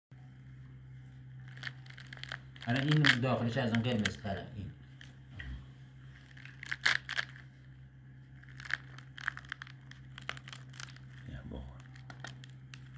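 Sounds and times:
steady low hum: 0.1s - 12.9s
pomegranate tearing and crackling: 1.4s - 5.2s, 6.2s - 7.7s, 8.3s - 12.9s.

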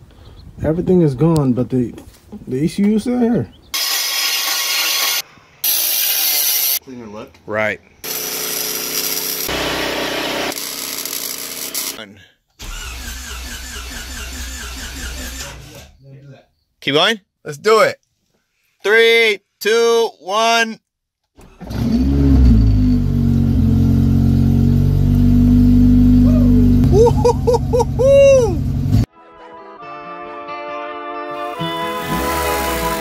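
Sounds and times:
car engine starting and idling: 12.6s - 15.6s, 21.4s - 29.1s.

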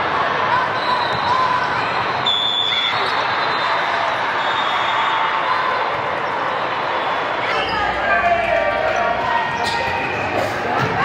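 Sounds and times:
crowd chatter and calls: 0.0s - 11.0s
referee's whistle: 0.7s - 1.6s, 2.2s - 5.2s.

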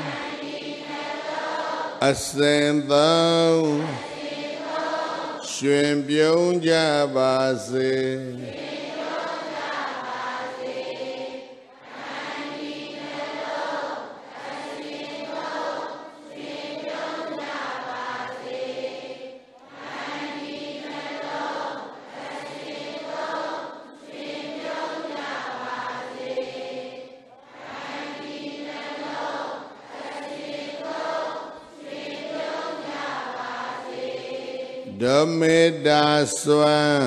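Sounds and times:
congregation chanting in unison: 0.0s - 37.0s
man singing slow phrases: 2.0s - 4.0s, 5.4s - 8.5s, 34.9s - 37.0s.

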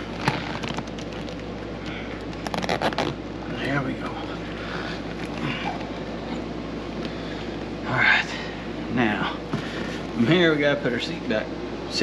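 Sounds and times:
steady background hum: 0.0s - 12.0s
hands smoothing seat cover: 2.4s - 3.2s.

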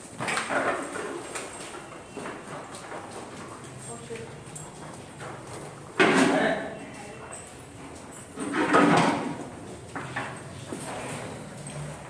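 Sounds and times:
hooves and footsteps on concrete: 0.0s - 6.0s, 6.6s - 12.0s.

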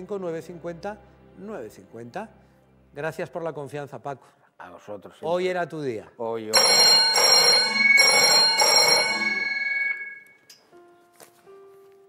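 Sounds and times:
telephone bell ringing: 6.6s - 10.5s.

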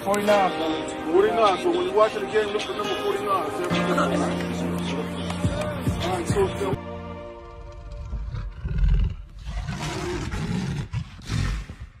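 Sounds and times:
big cat roaring: 7.6s - 11.8s.

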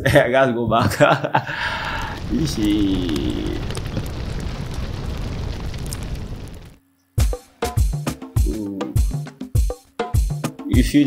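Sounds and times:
rumble of fire: 1.5s - 6.8s.

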